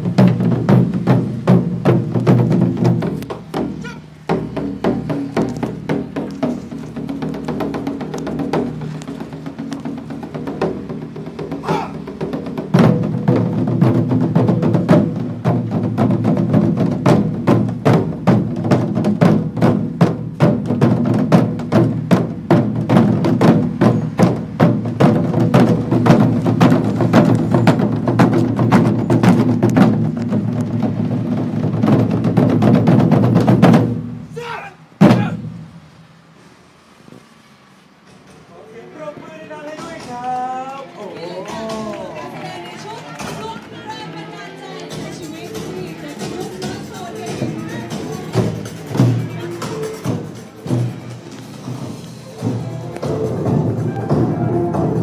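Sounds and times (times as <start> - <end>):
taiko drum ensemble playing: 0.0 - 35.8, 44.9 - 55.0.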